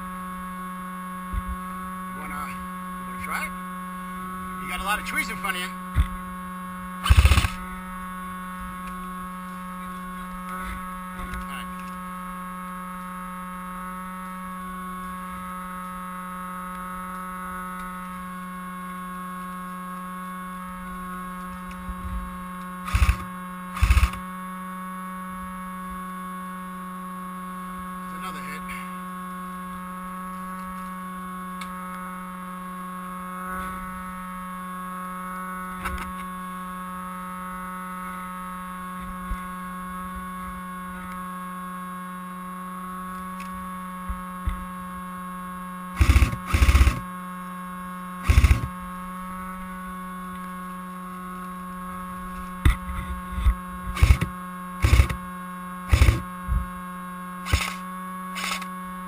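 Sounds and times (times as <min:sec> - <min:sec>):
constant whine: 0:00.0 - 0:59.0
electrical hum: 0:00.0 - 0:59.0.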